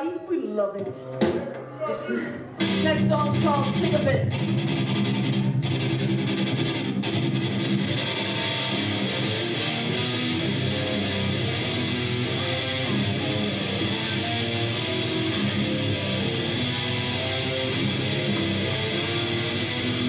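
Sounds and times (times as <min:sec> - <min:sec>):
distorted electric guitar picking: 0:00.8 - 0:20.0.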